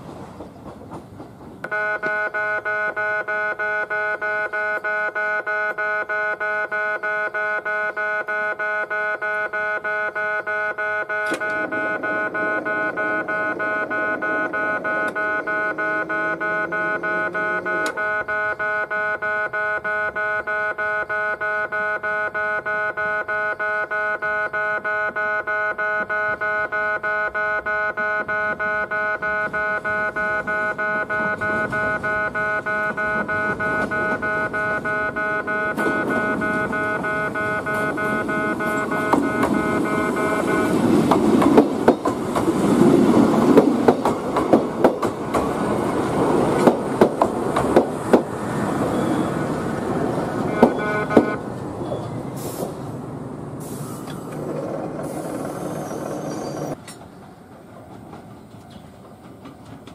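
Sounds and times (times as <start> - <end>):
level crossing warning bell: 1.6 - 52.2.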